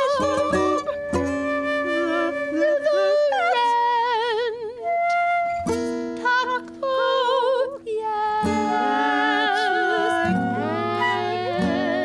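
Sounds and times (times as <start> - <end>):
woman singing wordlessly: 0.0 - 12.0.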